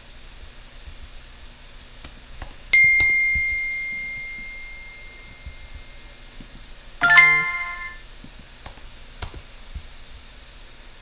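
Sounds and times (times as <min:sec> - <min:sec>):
high chime ding: 0:02.8 - 0:05.8, 0:07.0 - 0:08.0.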